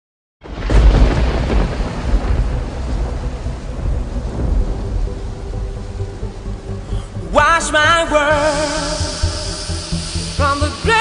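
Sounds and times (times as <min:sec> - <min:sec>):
steady rain: 0:00.4 - 0:11.0
thunder rumbling: 0:00.4 - 0:11.0.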